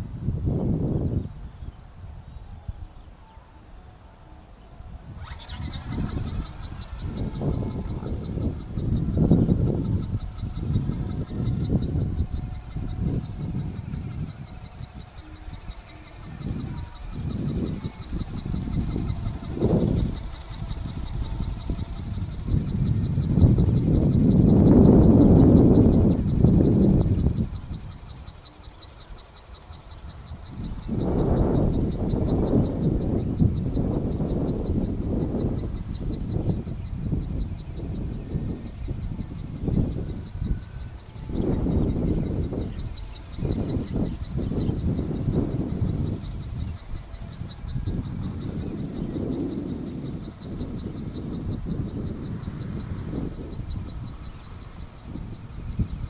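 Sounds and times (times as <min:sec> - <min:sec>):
steady high-pitched buzz: 0:00.0 - 0:56.0
wind buffeting microphone: 0:00.0 - 0:56.0.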